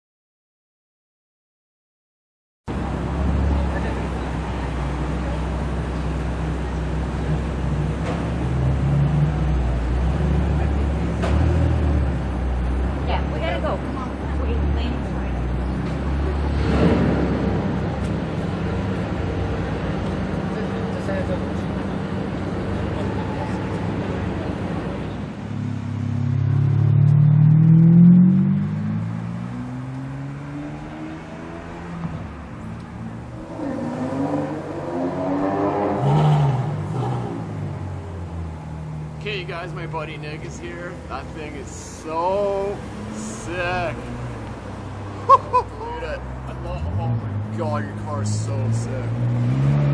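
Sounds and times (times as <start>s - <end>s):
supercar engine revving: 14.4s - 19.7s, 21.6s - 49.9s.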